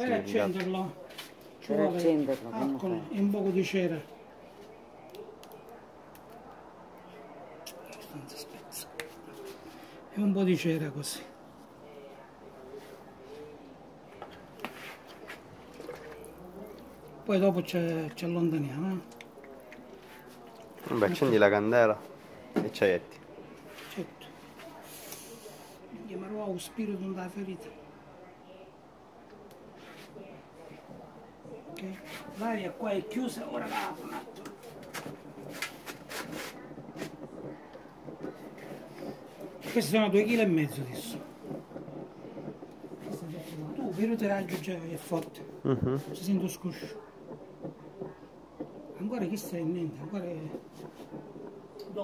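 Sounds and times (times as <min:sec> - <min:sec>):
soft crackles: 0:00.1 - 0:52.0.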